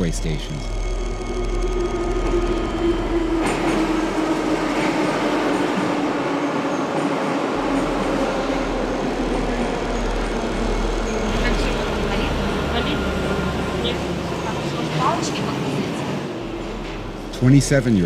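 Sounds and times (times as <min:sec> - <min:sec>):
metro train rumbling: 0:00.0 - 0:18.0.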